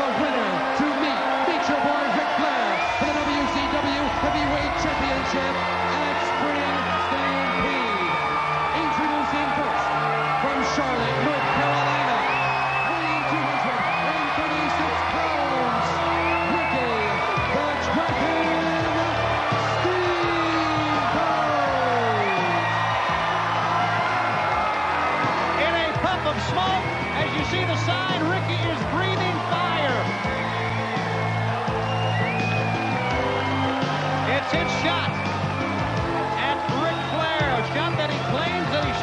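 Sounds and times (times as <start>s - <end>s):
arena crowd yelling and whooping: 0.0s - 39.0s.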